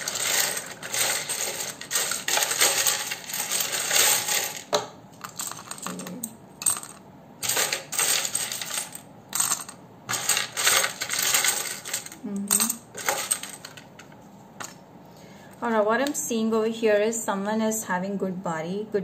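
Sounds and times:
letter tiles and charms clattering: 0.0s - 14.7s.

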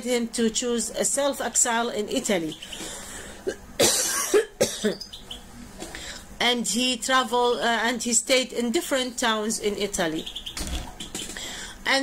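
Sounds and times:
woman coughing: 3.4s - 5.0s.

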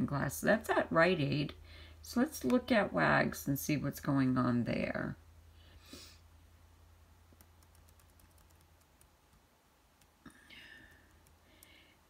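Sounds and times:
low steady hum: 0.0s - 12.0s
computer mouse clicking: 7.3s - 9.4s, 10.9s - 11.8s.

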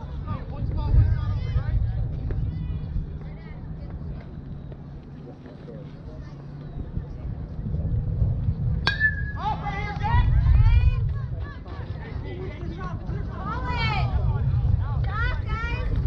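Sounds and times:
metal bat hitting ball: 8.8s - 9.5s.

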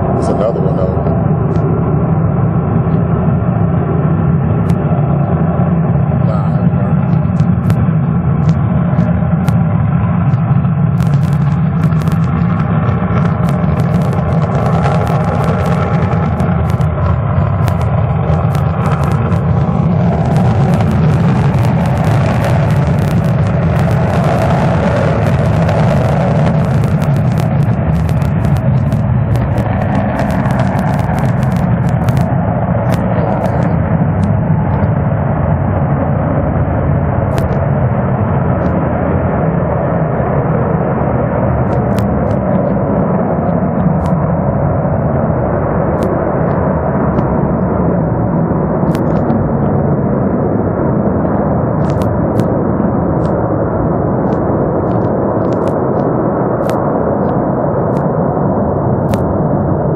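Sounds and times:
jet engine rumble with crackles: 0.0s - 59.9s.

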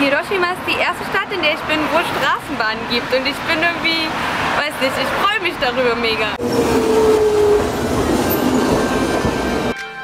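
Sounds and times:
streetcar passing on rails: 0.0s - 10.0s.

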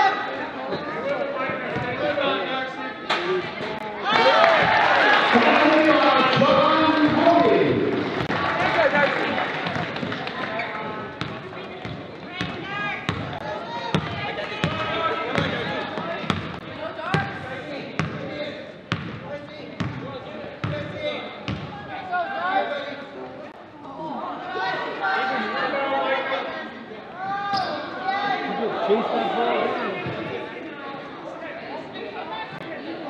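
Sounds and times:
chatter of voices: 19.3s - 33.0s.

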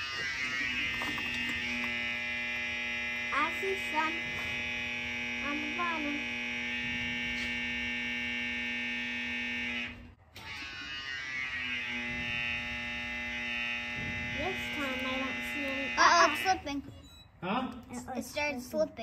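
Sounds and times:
voices: 3.2s - 7.7s, 14.3s - 19.0s.

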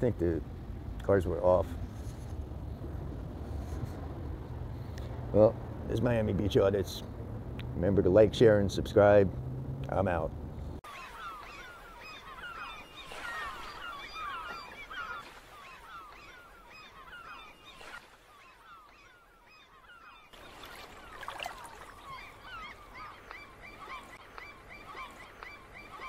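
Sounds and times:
flock of birds chirping: 10.8s - 26.0s.

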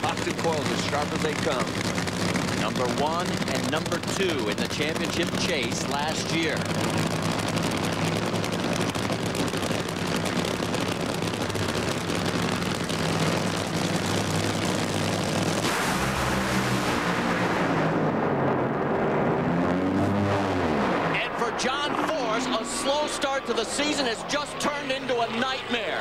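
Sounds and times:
drag racing engines: 0.0s - 26.0s.

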